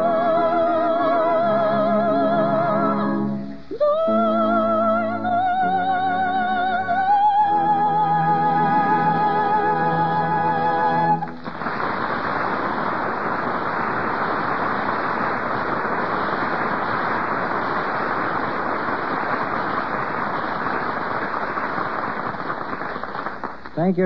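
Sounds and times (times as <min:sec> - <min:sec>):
audience applauding: 0:09.2 - 0:24.0.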